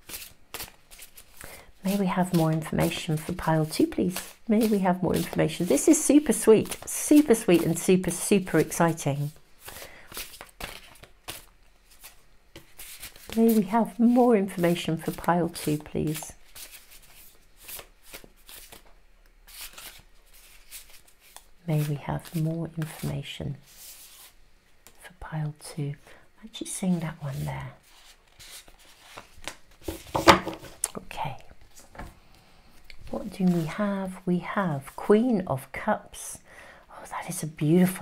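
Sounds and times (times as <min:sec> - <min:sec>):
cards being shuffled: 0:00.0 - 0:25.0, 0:27.8 - 0:30.9
woman speaking: 0:01.8 - 0:09.4, 0:13.4 - 0:16.4, 0:21.7 - 0:23.6, 0:25.0 - 0:27.8, 0:30.9 - 0:31.6, 0:33.1 - 0:38.0.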